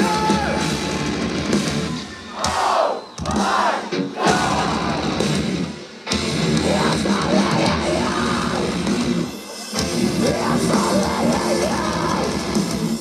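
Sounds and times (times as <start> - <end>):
people shouting: 0.0 - 1.0, 2.3 - 5.2
metalcore band playing loudly: 0.0 - 13.0.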